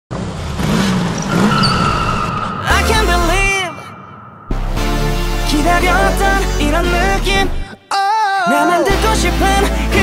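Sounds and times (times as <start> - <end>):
car tires squealing on tarmac: 0.6 - 3.2.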